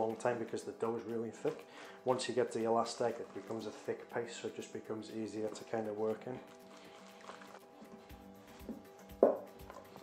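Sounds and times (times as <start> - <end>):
soft background music: 0.0 - 10.0
paste beaten in steel bowl: 6.4 - 8.1.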